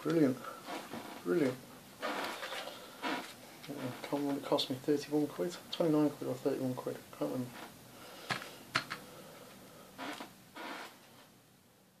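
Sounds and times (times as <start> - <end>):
plastic scraping rustles: 0.6 - 4.5.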